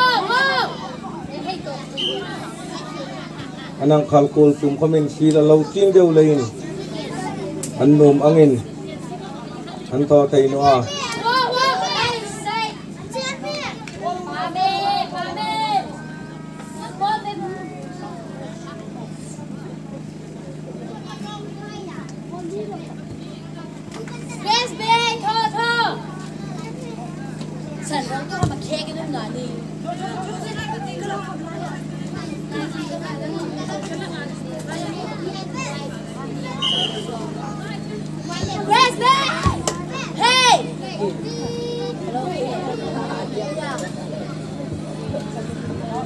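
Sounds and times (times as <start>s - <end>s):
steady low hum: 0.0s - 46.0s
voices shouting and calling: 0.0s - 46.0s.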